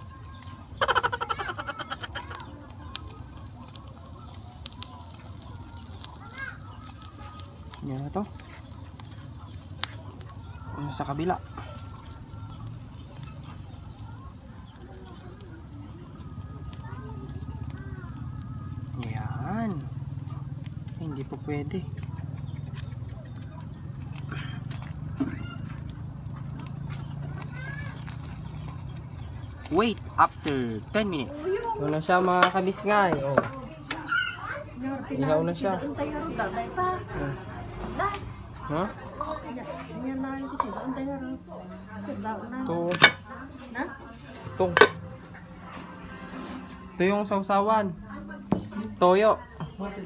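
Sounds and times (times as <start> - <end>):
faint voices or animal calls: 0.0 - 31.9, 33.6 - 47.0
charcoal crackling: 0.0 - 50.0
people talking: 0.0 - 50.0.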